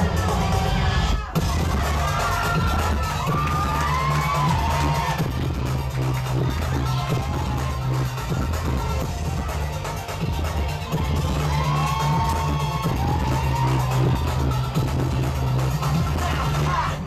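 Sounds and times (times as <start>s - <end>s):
crowd shouting and cheering: 0.0s - 17.0s
loud dance music: 0.0s - 17.0s.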